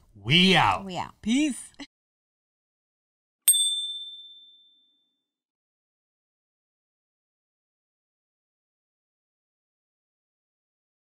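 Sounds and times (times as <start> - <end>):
high bell-like chime: 3.5 - 5.2.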